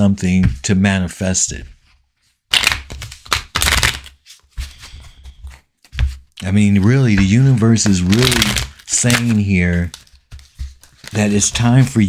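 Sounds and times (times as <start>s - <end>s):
cards being shuffled: 2.5s - 12.0s.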